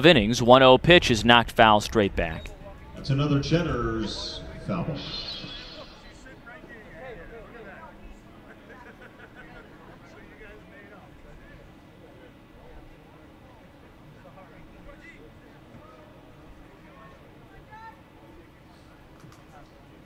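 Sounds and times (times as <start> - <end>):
crowd chatter: 2.3 - 20.0.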